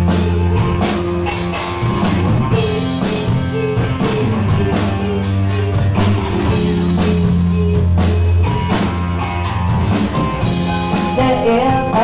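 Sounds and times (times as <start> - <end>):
drum kit hits: 0.0 - 12.0
electric guitar: 0.0 - 12.0
low bass notes: 0.0 - 12.0.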